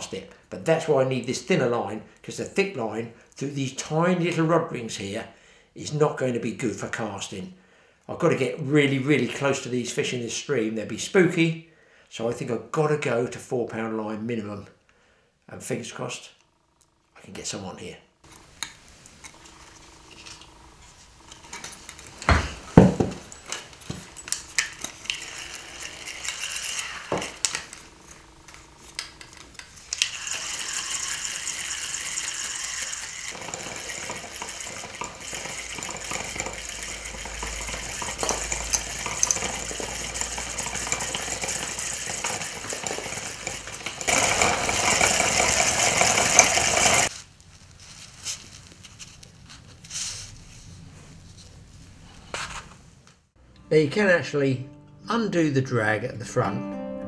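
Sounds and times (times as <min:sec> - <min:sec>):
handling clicks and rattles: 0:21.2 - 0:26.5, 0:32.9 - 0:47.1
fishing reel whirring: 0:23.4 - 0:47.1.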